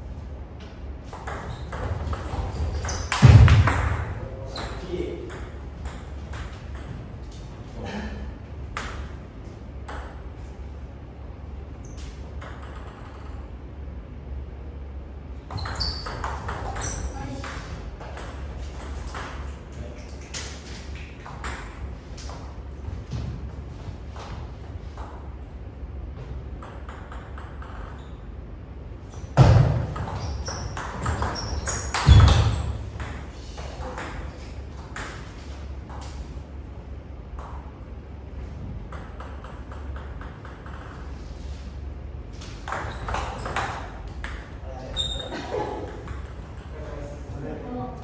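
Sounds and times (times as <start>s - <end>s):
table tennis ball hitting bats: 1.0s - 7.1s, 8.7s - 9.2s, 12.3s - 13.5s, 15.5s - 22.5s, 26.5s - 28.0s, 29.3s - 36.2s, 38.9s - 41.1s, 42.4s - 44.6s, 45.8s - 46.7s
ball bouncing on table: 1.1s - 7.1s, 9.8s - 10.2s, 12.4s - 13.4s, 15.5s - 19.4s, 26.6s - 28.1s, 29.4s - 35.2s, 38.9s - 41.0s, 42.5s - 45.2s.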